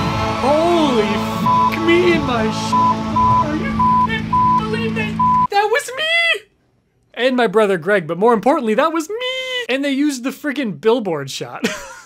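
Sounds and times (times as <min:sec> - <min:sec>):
television soundtrack music: 0:00.0 - 0:05.5
short high beeps: 0:02.7 - 0:05.5.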